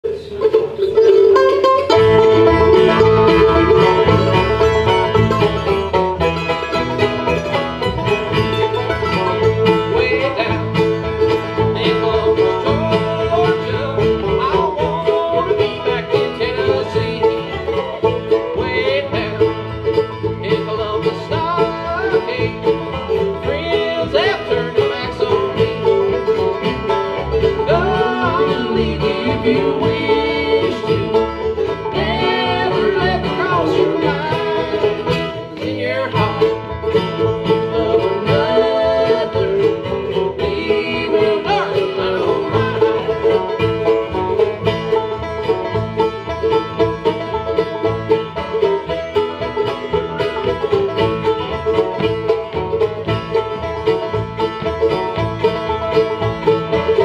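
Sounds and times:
bluegrass band playing: 0:00.0 - 0:57.0.

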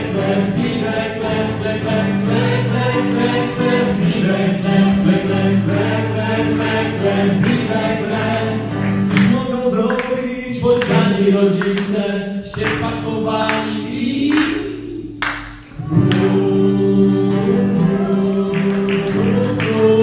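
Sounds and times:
acoustic guitar: 0:00.0 - 0:20.0
group singing: 0:00.0 - 0:20.0.

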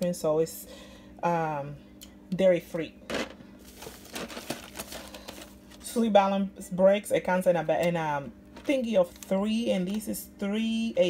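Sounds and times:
plastic bags crinkling: 0:03.1 - 0:05.9.

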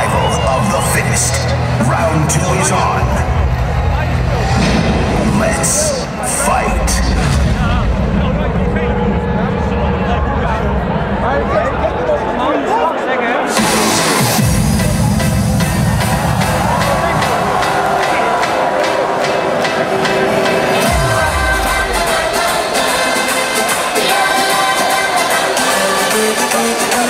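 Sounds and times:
crowd cheering: 0:00.0 - 0:27.0
loud electronic music: 0:00.0 - 0:27.0.

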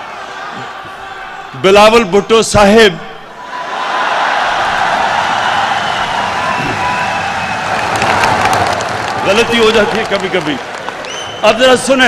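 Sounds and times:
crowd cheering and shouting: 0:00.0 - 0:02.4, 0:03.2 - 0:12.0
thin held whistles: 0:11.0 - 0:11.5.

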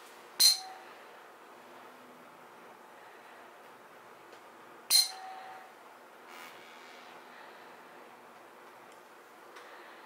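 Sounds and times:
tuning fork struck with metal rod: 0:00.4 - 0:00.8, 0:04.9 - 0:05.5.

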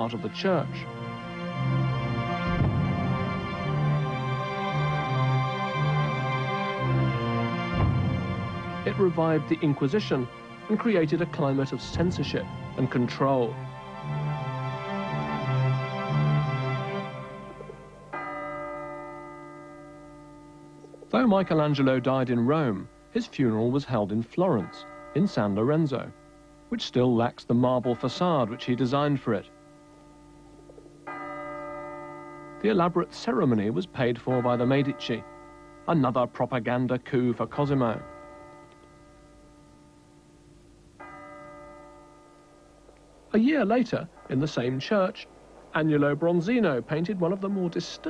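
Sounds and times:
background music: 0:00.0 - 0:48.0
bell ringing: 0:02.4 - 0:27.1.

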